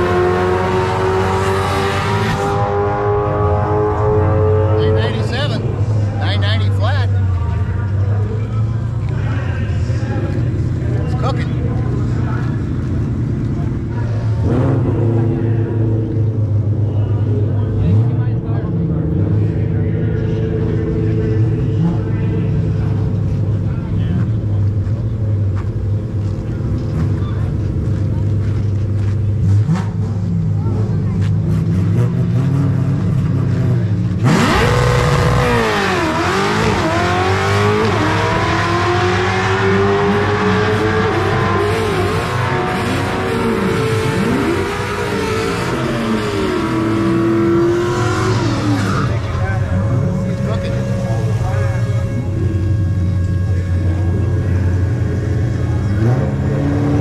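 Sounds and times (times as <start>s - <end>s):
car engine revving through gears: 0.0s - 5.4s, 14.2s - 16.9s, 26.1s - 57.0s
car engine idling: 41.3s - 56.5s.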